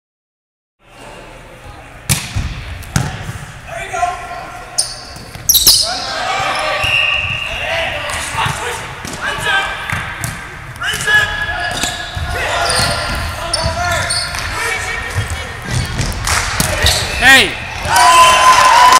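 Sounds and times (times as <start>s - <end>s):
volleyball being hit: 2.1s - 3.4s
players shouting: 5.8s - 10.2s, 10.8s - 15.6s, 16.6s - 18.9s.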